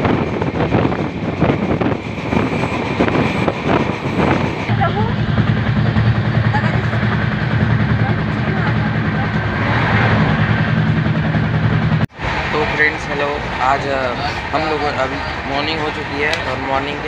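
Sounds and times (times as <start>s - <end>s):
train rumble: 0.0s - 17.0s
wind noise: 0.0s - 17.0s.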